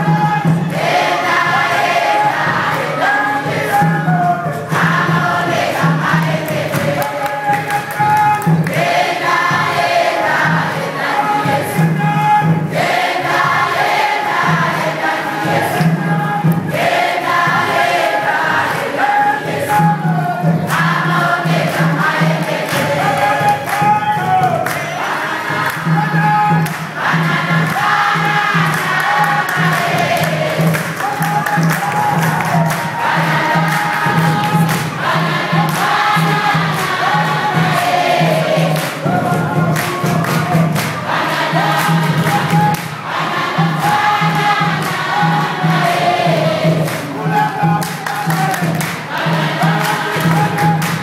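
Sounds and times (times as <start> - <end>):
congregation singing: 0.0 - 51.0
sharp percussive hits: 0.0 - 51.0
low drum beat: 19.5 - 51.0.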